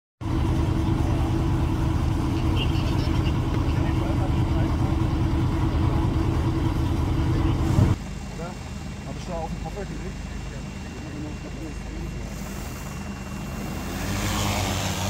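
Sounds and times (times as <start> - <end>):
engine running steadily: 0.2 - 15.0.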